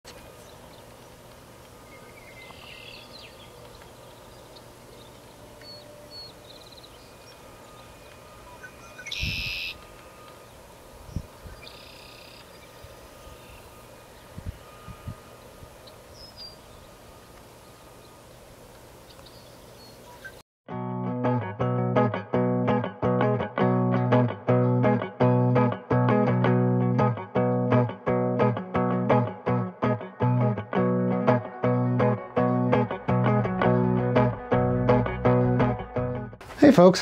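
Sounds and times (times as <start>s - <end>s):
background hiss: 0.1s - 20.4s
faint hum: 0.1s - 20.4s
high bird calls: 0.4s - 18.2s, 19.0s - 20.4s.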